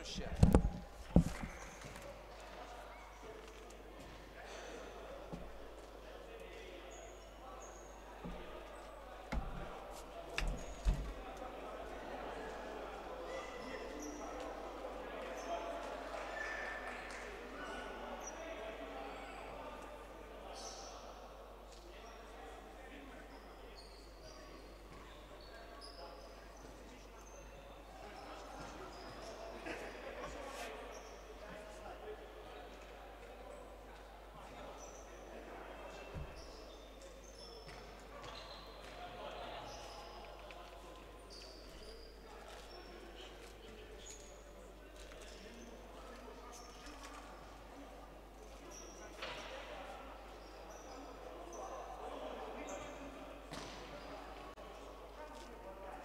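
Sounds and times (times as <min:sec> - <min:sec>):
ball thud: 0:00.1 - 0:01.5.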